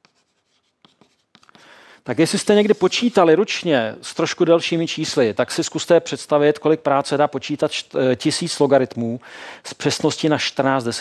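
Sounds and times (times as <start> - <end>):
chalk on blackboard: 0.0 - 1.6, 2.2 - 3.3.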